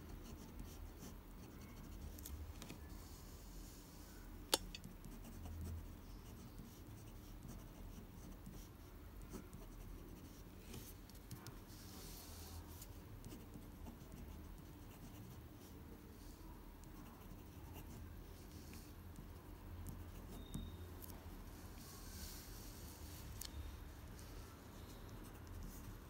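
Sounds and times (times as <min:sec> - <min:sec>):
pen scratching on paper: 0:00.2 - 0:02.0, 0:04.7 - 0:15.8, 0:16.9 - 0:20.7
sharp click: 0:04.5 - 0:04.8.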